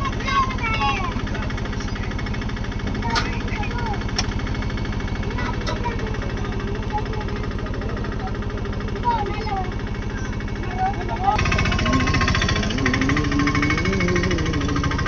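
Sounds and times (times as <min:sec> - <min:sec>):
voices in background: 0:00.0 - 0:14.0
engine idling: 0:00.0 - 0:15.0.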